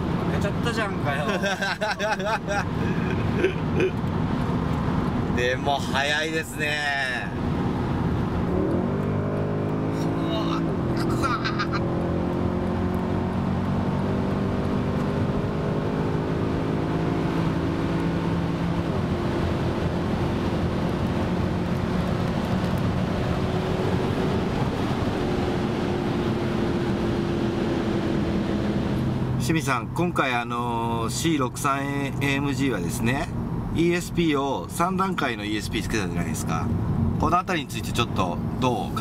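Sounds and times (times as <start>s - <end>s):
road noise: 0.0s - 39.0s
car engine accelerating: 7.3s - 29.5s.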